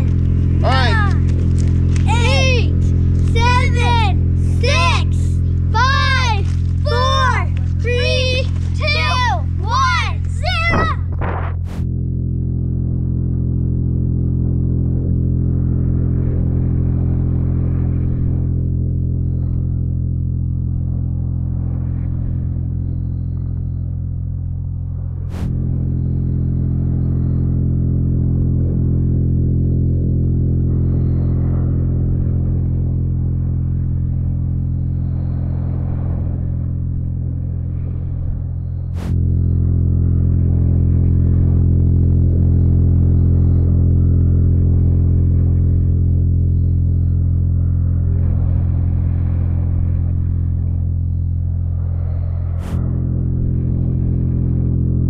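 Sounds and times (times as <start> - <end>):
low drone of stacked tones: 0.0 - 55.0.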